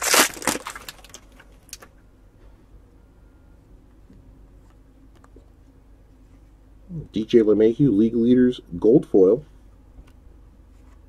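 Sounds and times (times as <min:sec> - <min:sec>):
foil wrapper tearing and crinkling: 0:00.0 - 0:01.8.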